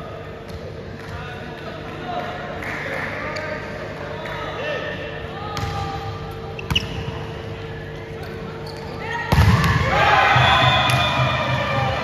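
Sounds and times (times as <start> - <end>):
players shouting and cheering: 9.0 - 12.0
volleyball struck hard: 9.3 - 9.9.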